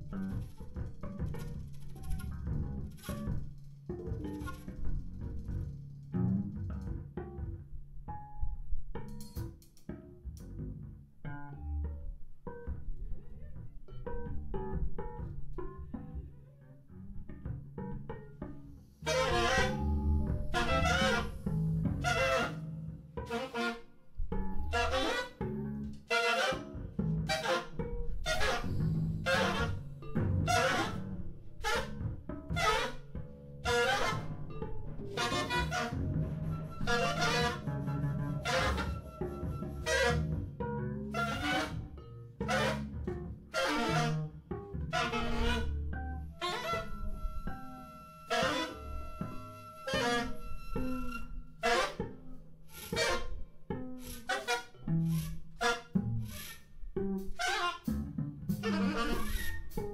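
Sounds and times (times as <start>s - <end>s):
plucked bass guitar: 0.0s - 59.9s.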